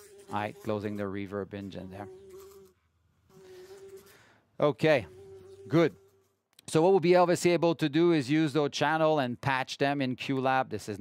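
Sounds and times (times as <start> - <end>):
steady buzzing tone: 0.0 - 6.5.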